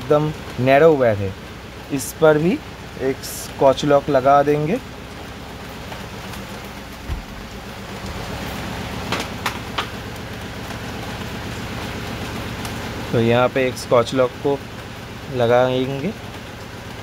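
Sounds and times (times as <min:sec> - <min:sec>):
low thump: 0:07.0 - 0:07.6.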